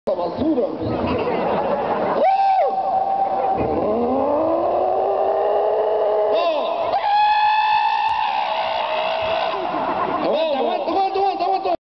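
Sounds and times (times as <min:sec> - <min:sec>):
crowd chatter: 0:00.4 - 0:04.2.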